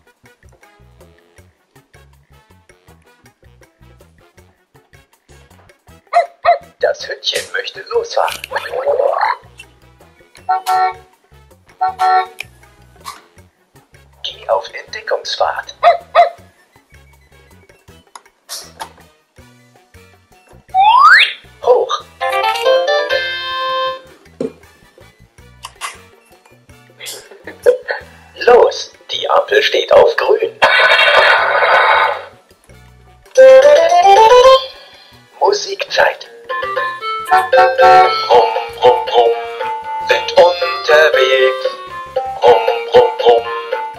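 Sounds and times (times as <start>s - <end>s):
toy horn honks: 10.5s - 11.0s, 11.8s - 12.4s, 23.2s - 24.1s, 36.6s - 38.6s
low electronic tune: 33.4s - 34.8s, 36.4s - 42.6s.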